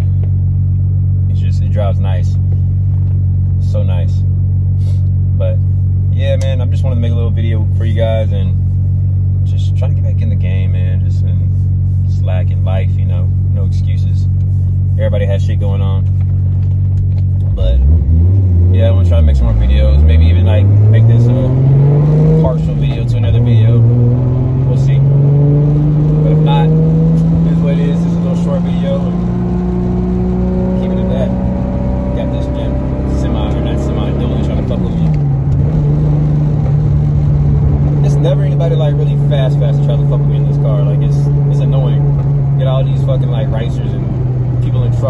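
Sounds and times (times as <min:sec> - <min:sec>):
car engine accelerating through gears: 0:16.1 - 0:45.0.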